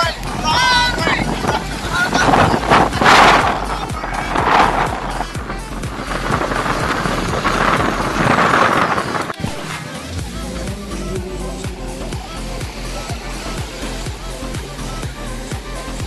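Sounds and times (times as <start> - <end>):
background music with bass: 0.0 - 16.0
waves washing on sand: 0.0 - 16.0
wind on microphone: 0.0 - 16.0.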